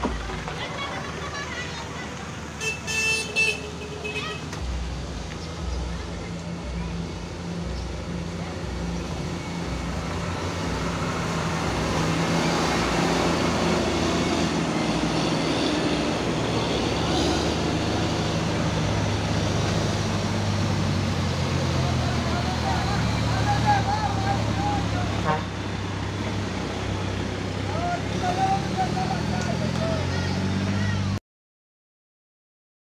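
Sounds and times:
heavy diesel engines passing: 0.0s - 31.2s.

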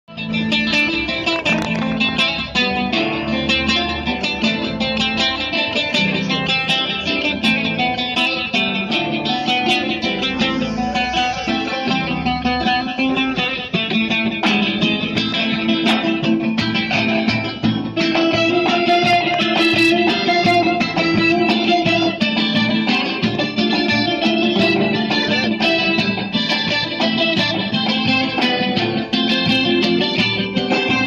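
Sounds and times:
acoustic guitar strumming: 0.1s - 31.0s
long-necked lute playing: 0.1s - 31.0s.

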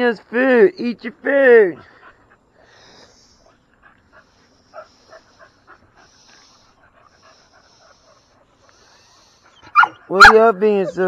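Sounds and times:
dog panting: 1.8s - 11.0s.

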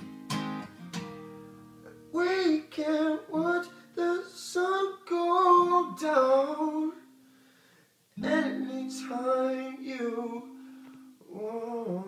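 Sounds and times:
ringing acoustic guitar: 0.0s - 12.0s.

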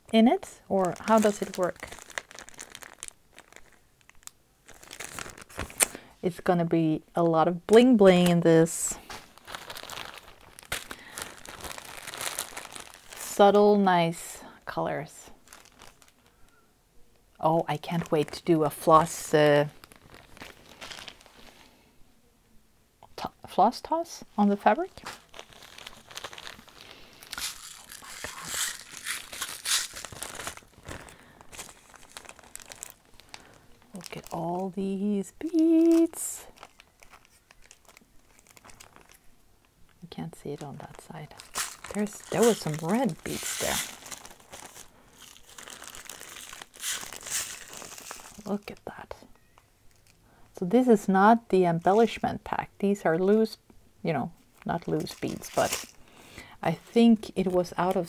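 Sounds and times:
plastic zip bag crinkling: 0.6s - 6.1s, 8.0s - 13.6s, 15.3s - 16.6s, 17.7s - 21.7s, 24.8s - 39.3s, 39.9s - 50.2s, 54.5s - 56.2s.

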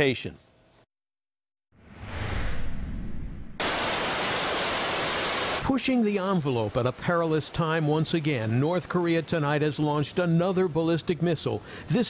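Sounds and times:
whoosh with low rumble: 1.8s - 3.6s.

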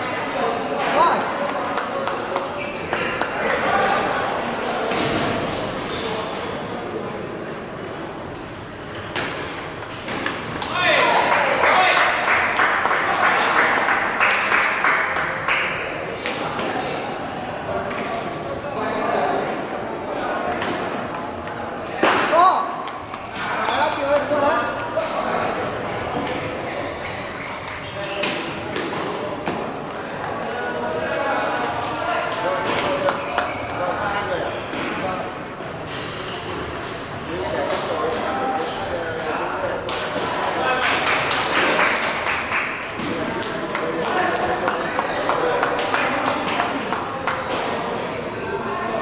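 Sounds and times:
people talking: 0.0s - 8.5s, 9.1s - 42.3s, 42.9s - 49.0s
table tennis balls clicking: 7.4s - 10.8s, 28.7s - 33.7s.

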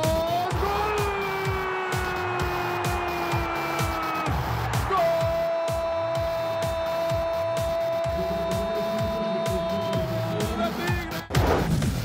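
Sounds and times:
background music with beat: 0.0s - 12.0s
commentator's long goal cry: 4.8s - 10.5s.

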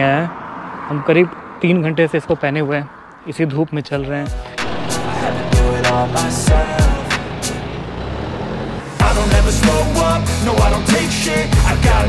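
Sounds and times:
background music: 4.0s - 12.0s
vehicle engine running: 4.4s - 10.0s.

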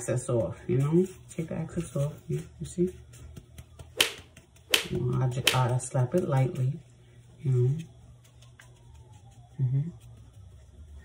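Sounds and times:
gloved hand slapping fish: 3.4s - 6.2s.

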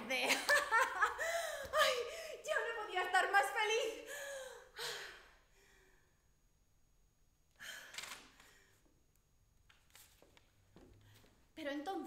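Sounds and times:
woman gasping: 1.1s - 2.5s, 4.0s - 6.0s.

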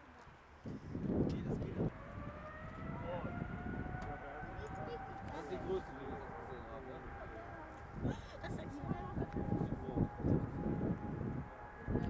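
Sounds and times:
jet engines whining: 1.7s - 12.0s.

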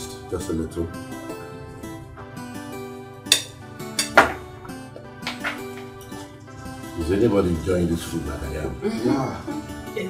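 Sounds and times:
film music with sustained notes: 0.0s - 10.0s
cutlery clinking on plates: 3.3s - 4.5s, 5.2s - 5.9s.

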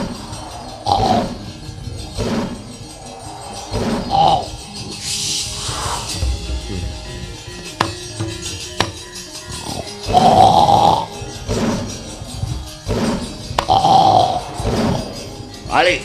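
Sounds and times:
gamelan music: 0.0s - 16.0s.

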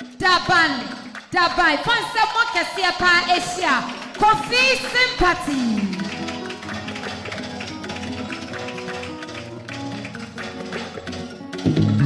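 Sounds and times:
steady tapping beat: 0.0s - 12.0s
keyboard chords: 5.4s - 12.0s.

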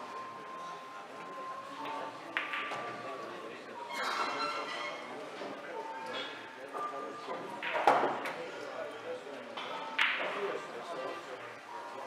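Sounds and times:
pool balls clicking: 2.4s - 2.8s, 9.7s - 10.4s.

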